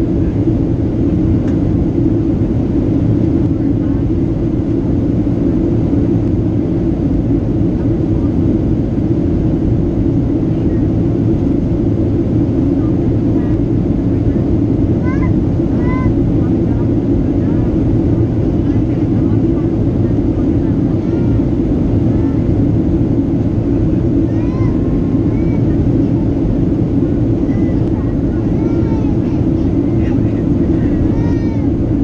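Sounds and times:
airplane cabin engine rush: 0.0 - 32.0
faint voices: 7.4 - 32.0.

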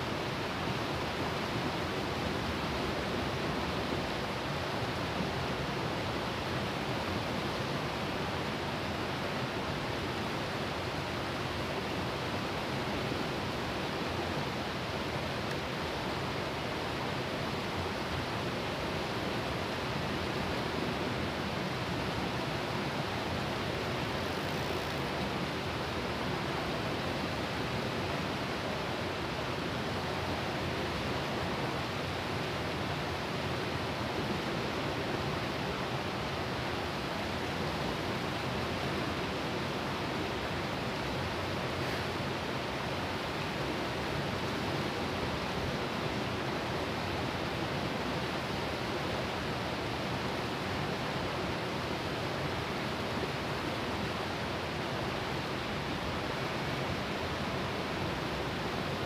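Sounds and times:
river rushing over rocks: 0.0 - 59.0.

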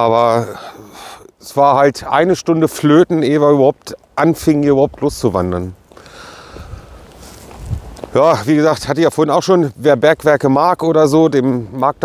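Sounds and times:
soft rustling: 3.7 - 10.2
wind rumbling on microphone: 4.0 - 8.9.

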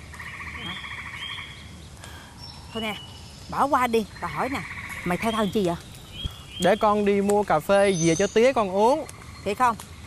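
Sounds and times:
frogs calling in rapid trill: 0.2 - 1.6, 3.5 - 5.8.

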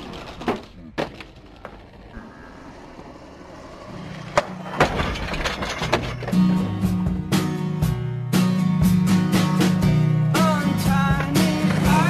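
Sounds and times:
skateboard knocks and clacks: 4.2 - 6.5.

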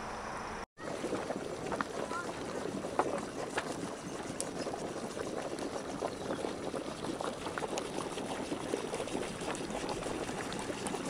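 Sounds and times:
hot spring bubbling and gurgling: 0.8 - 11.0.

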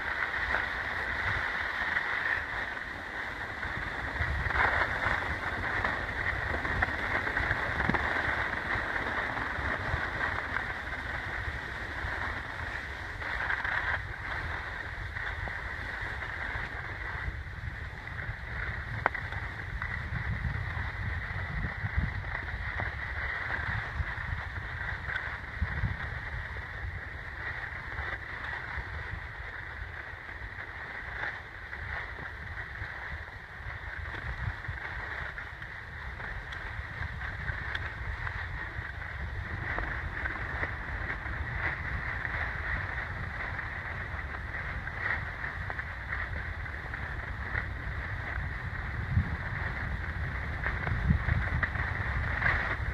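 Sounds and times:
skis scraping over snow: 0.0 - 52.9
wind rushing over microphone: 0.0 - 52.9.

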